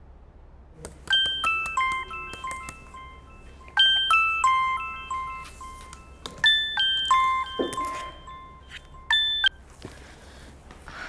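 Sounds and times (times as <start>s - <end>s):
laptop ringtone chime: 1.1s - 9.6s.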